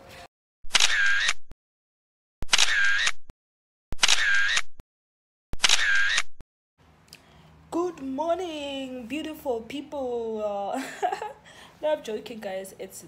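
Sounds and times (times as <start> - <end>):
camera shutter clicks: 0.7 - 1.4, 2.5 - 3.2, 4.0 - 4.7, 5.6 - 6.3.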